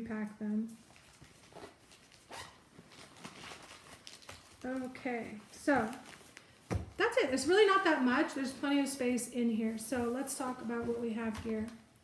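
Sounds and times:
fabric pouch rustling: 0.8 - 12.0.

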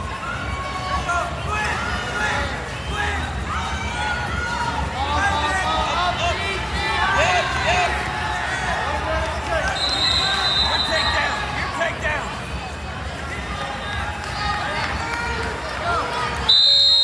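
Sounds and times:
people shouting in a hall: 0.0 - 8.9
whistle blast: 9.7 - 11.2, 16.5 - 17.0.

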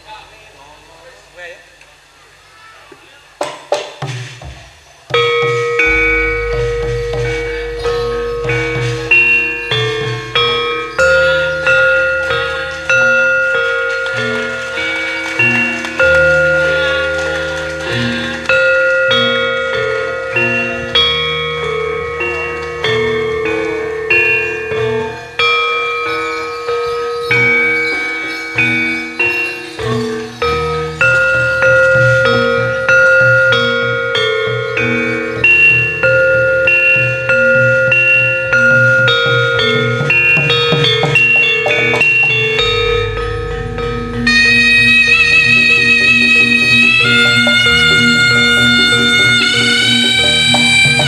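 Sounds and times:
metal mallet instruments ringing: 5.1 - 51.0
deep low notes: 5.2 - 18.7, 39.6 - 50.2.

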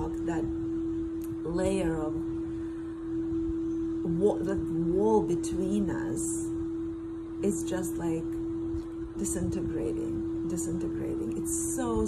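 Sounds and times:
steady hum: 0.0 - 12.0.

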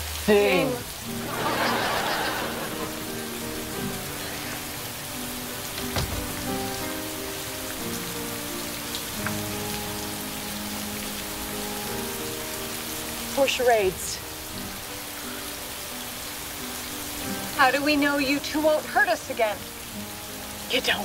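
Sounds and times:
rain falling on pavement: 0.0 - 21.0
soft music of sustained notes: 0.0 - 21.0.

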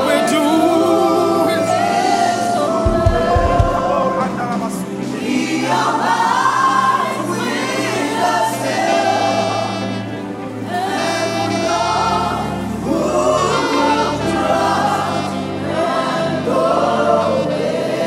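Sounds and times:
gospel vocalists singing: 0.0 - 18.0
live band: 0.9 - 5.2.

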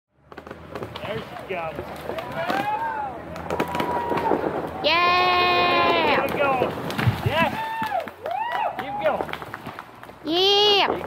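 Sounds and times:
people talking outdoors: 0.3 - 11.0.

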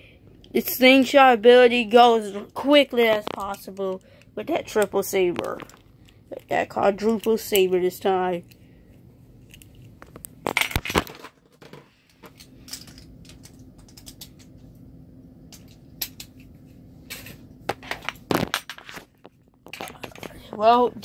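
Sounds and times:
plastic and metal pieces clattering: 9.5 - 14.5, 17.1 - 20.3.

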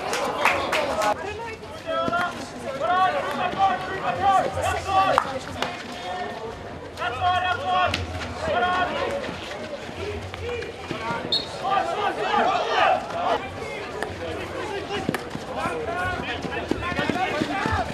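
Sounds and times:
players shouting: 1.8 - 6.4, 7.0 - 17.9.

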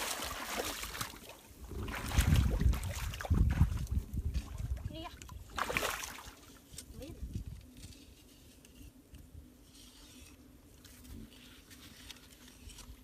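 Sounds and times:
water splashing from wading: 0.0 - 6.4.

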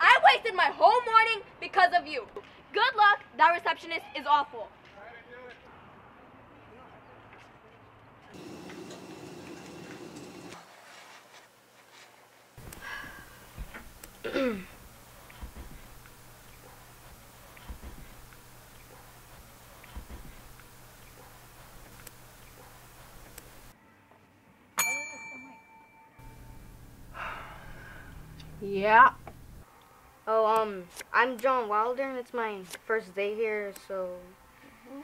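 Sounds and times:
steady low hum: 12.6 - 23.7, 25.7 - 33.0
service bell ringing: 24.8 - 26.8.

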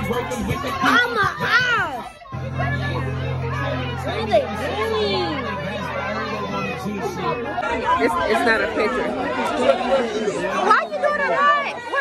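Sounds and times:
children's excited voices: 0.0 - 12.0
people chatting: 0.0 - 12.0.

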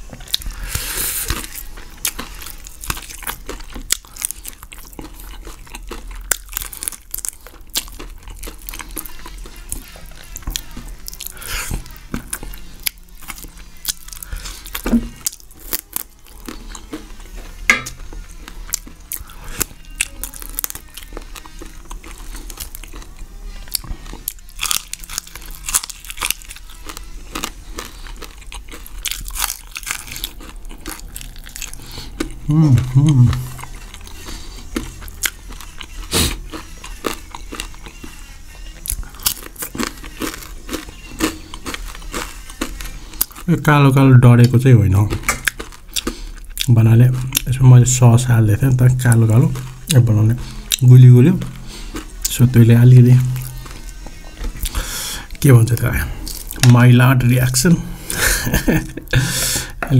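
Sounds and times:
crunching bites and chewing: 0.1 - 56.9.

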